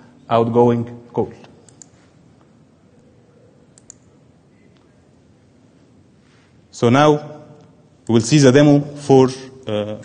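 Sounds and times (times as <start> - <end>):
faint clicks: 3.7 - 4.1.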